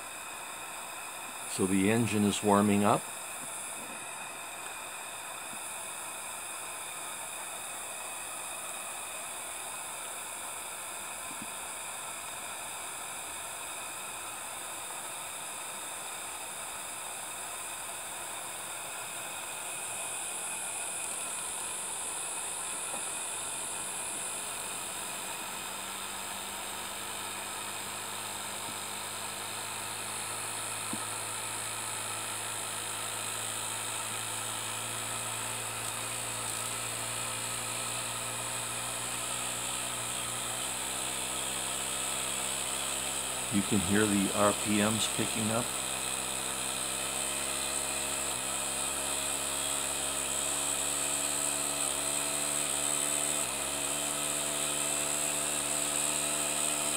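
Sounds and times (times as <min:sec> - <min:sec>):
steam hiss: 0:00.0 - 0:54.0
miniature steam engine whirring: 0:01.4 - 0:56.9.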